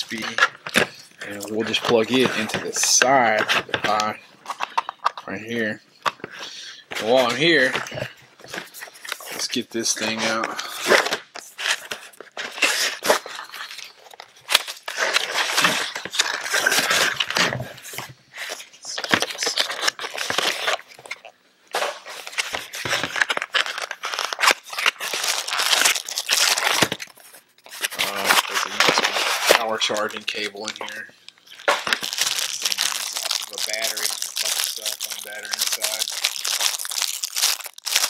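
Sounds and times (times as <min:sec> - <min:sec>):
cardboard and plastic rustling: 0:00.0 - 0:38.0.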